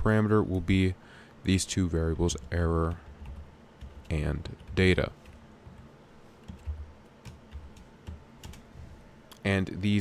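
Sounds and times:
typing on computer keyboard: 2.3 - 5.8, 6.4 - 8.7.

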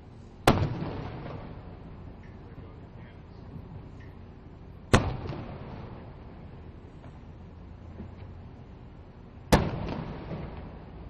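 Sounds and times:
low background rumble: 0.0 - 11.0
cannon firing bang: 0.4 - 1.8, 4.9 - 6.2, 9.5 - 11.0.

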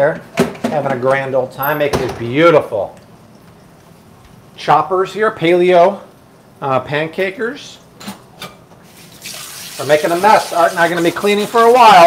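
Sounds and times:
tap running water into sink: 8.9 - 11.9.

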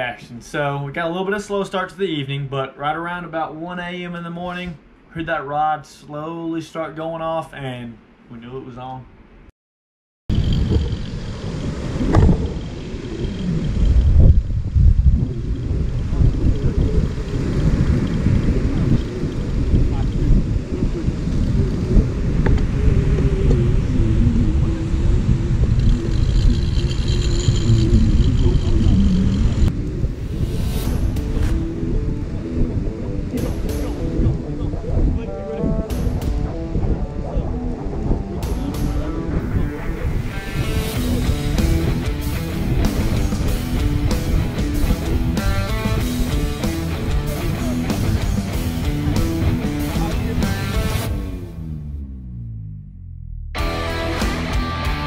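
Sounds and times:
rough surf: 10.3 - 51.7
wind buffeting microphone: 10.3 - 51.7
rock music with guitar: 30.7 - 51.6, 53.6 - 55.0.

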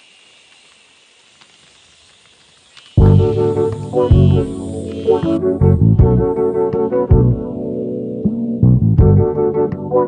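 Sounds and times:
faint clicks: 0.0 - 3.0
faint steady hiss: 0.0 - 7.0.

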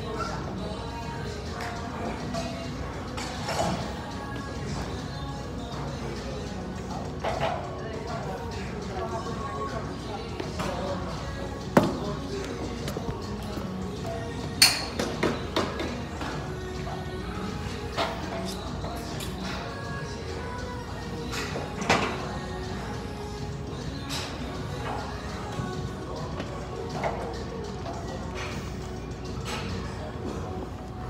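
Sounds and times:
background music: 0.0 - 31.0
voices in a gym: 0.0 - 31.0.

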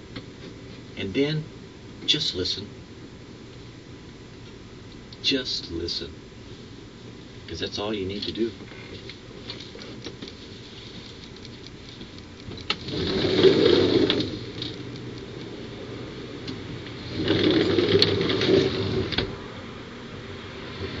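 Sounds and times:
fabric rubbing on microphone: 12.8 - 14.9, 17.0 - 19.2.

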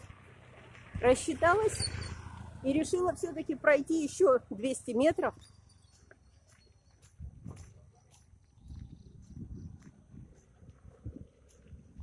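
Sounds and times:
footsteps on a road: 0.0 - 1.6, 2.2 - 12.0.

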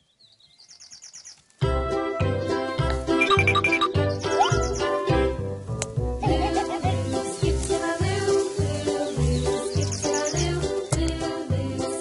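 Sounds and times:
bird trilling chirps: 0.0 - 1.6, 3.2 - 5.0, 9.0 - 10.5.

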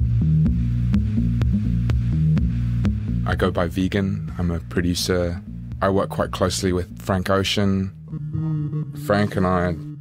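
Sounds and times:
low bass synth notes: 0.0 - 10.0.

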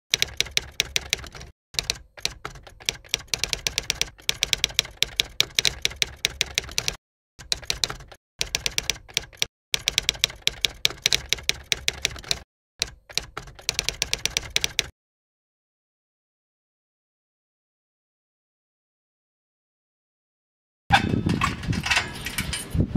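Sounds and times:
typewriter keystrokes clicking: 0.1 - 14.9.

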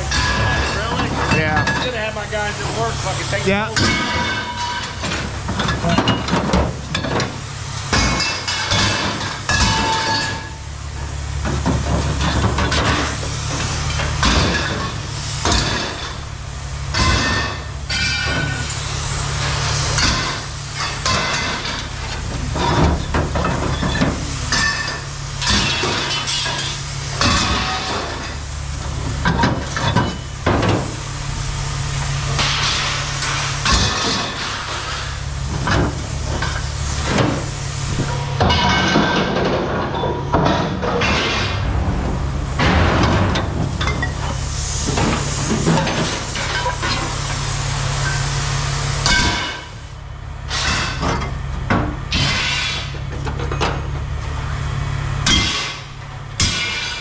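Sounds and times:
scrap metal clanking into bins: 0.0 - 16.3, 16.9 - 31.1, 32.0 - 41.9, 42.6 - 47.4, 49.0 - 49.9, 50.5 - 54.0, 55.2 - 57.0
low rumble: 35.2 - 46.4.

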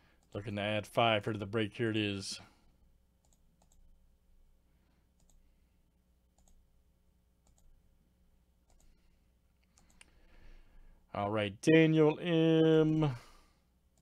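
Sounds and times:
low steady hum: 0.0 - 14.0.

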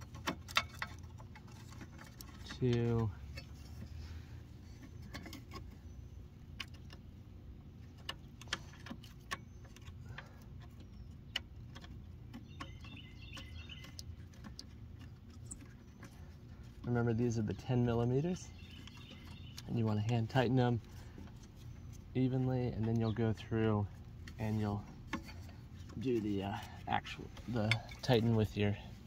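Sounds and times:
low steady hum: 0.0 - 29.0.

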